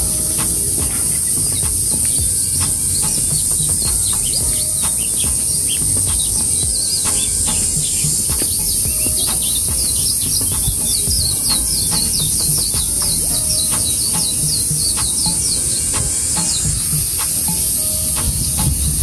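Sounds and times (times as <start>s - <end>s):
birds chirping: 0.0s - 19.0s
high-pitched insect hiss: 0.0s - 19.0s.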